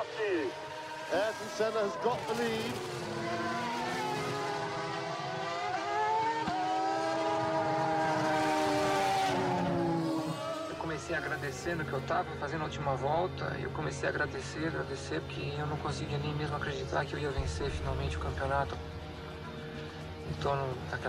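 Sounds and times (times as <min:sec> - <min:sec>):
racing car engines high revs: 0:00.0 - 0:12.1.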